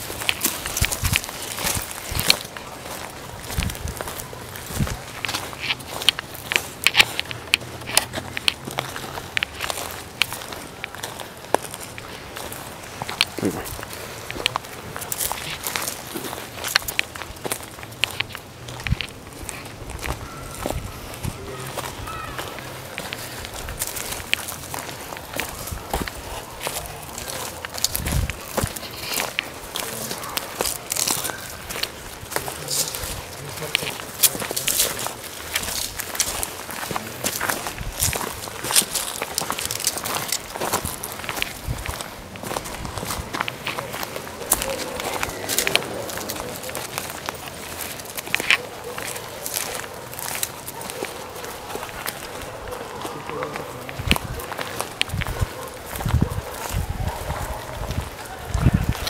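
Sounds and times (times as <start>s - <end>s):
footsteps crunching through dry leaves: 0.0s - 59.0s.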